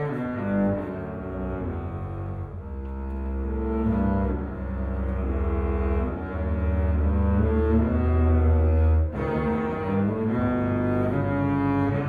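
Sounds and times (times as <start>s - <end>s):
double basses bowing low notes: 0.0s - 12.0s.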